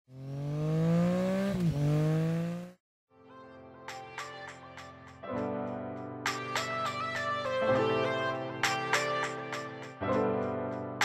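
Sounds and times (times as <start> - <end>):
vehicle engine accelerating: 0.1 - 2.8.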